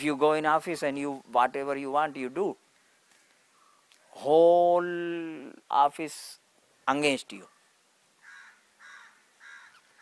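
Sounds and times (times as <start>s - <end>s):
bird calling faintly: 7.4s - 10.0s.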